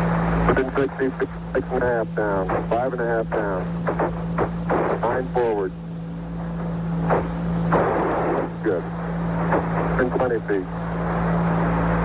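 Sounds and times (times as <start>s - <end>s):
radio static hiss: 0.1s - 11.4s
radio hum: 0.3s - 11.2s
rush of radio noise: 0.4s - 5.7s, 7.0s - 10.7s
radio voice callouts: 0.5s - 5.8s, 6.6s - 10.7s.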